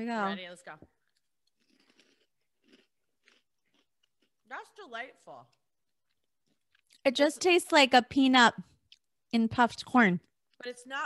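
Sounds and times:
faint chewing of crunchy snack: 0.8 - 7.1, 10.2 - 10.9.

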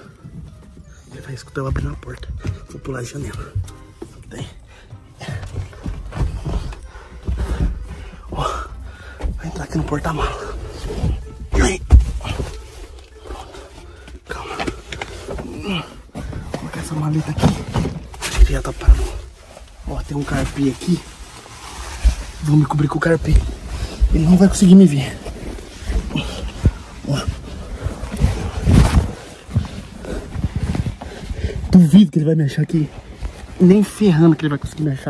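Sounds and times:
carpet rustling and rubbing: 0.0 - 35.0
fabric scraping on microphone: 17.5 - 31.8.

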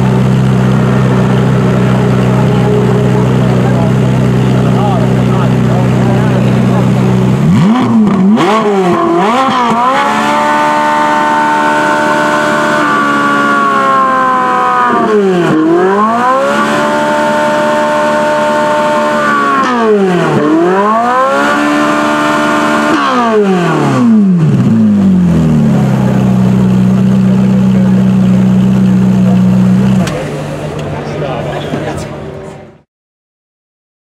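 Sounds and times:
supercar engines revving: 0.0 - 32.9.

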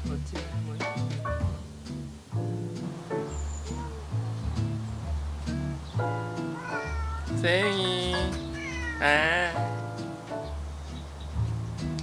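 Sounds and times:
music with deep bass: 0.0 - 6.6, 7.2 - 12.0
cat meowing: 3.3 - 4.2, 6.4 - 9.8.

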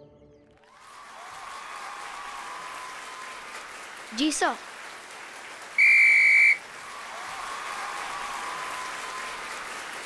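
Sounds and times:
crowd applauding: 0.6 - 10.0
sports whistle blast: 5.8 - 6.6.

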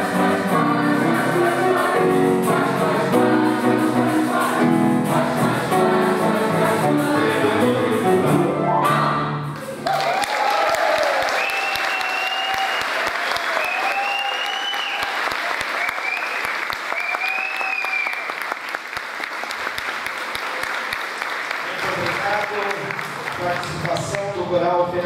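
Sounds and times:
choir singing: 0.0 - 9.9
people cheering: 9.6 - 18.8, 19.6 - 24.2
audience clapping: 9.6 - 24.7.

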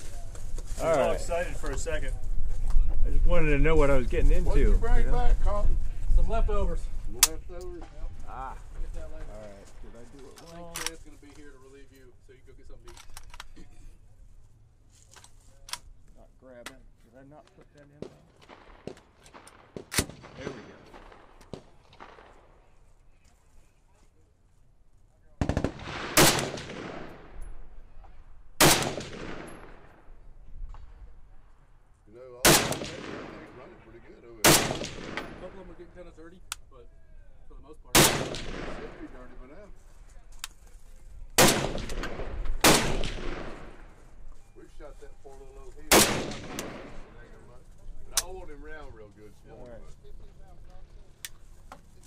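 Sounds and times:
quiet talking: 4.4 - 18.4, 22.1 - 25.7, 38.5 - 42.0, 44.0 - 52.0
metallic rifle clicks: 12.8 - 13.7
rifle shots with echo: 18.0 - 22.9, 25.4 - 27.8, 28.6 - 30.2, 32.4 - 35.9, 37.9 - 39.6, 41.4 - 44.1, 45.8 - 47.3.

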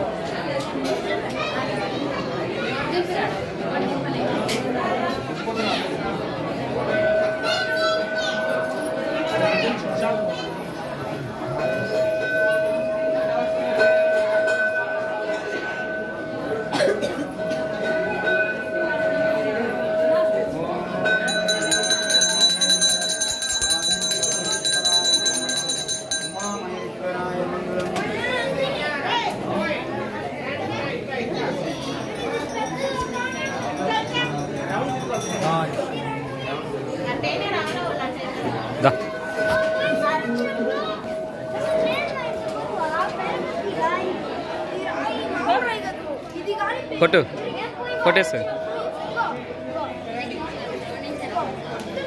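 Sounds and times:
crowd voices: 0.0 - 52.0
overlapping chatter: 0.0 - 52.0
brass bell rung rapidly: 11.6 - 26.8, 31.9 - 35.7.

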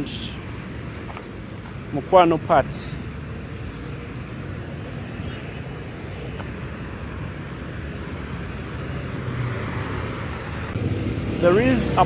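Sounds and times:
cars and motorcycles driving by: 0.0 - 12.0.

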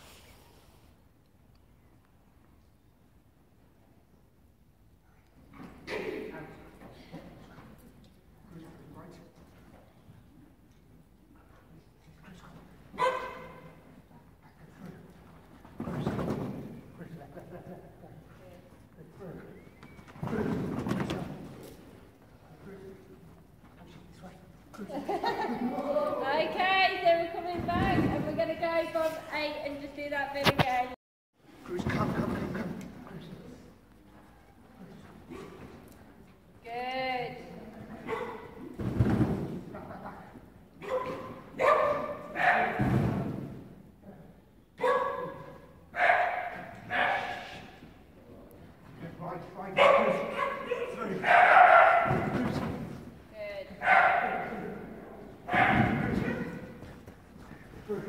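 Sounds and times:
dog barking: 13.0 - 13.7, 38.0 - 38.5, 40.8 - 42.8, 44.8 - 47.6, 49.8 - 52.3, 53.8 - 54.6, 55.5 - 56.6.

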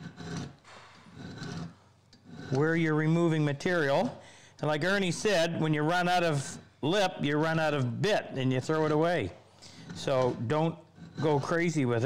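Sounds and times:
file rasping on steel: 0.0 - 3.3, 8.8 - 12.0.

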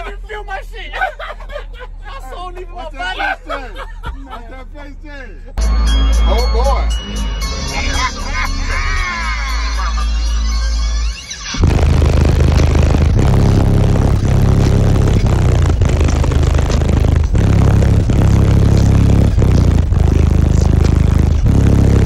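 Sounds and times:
bass-heavy music from car speakers: 5.3 - 22.0.

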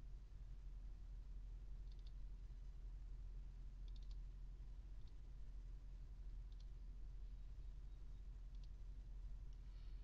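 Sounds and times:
low steady hum: 0.0 - 10.0
computer mouse clicks: 1.8 - 2.2, 3.8 - 4.2, 5.0 - 5.2, 6.4 - 6.8, 8.5 - 8.8.

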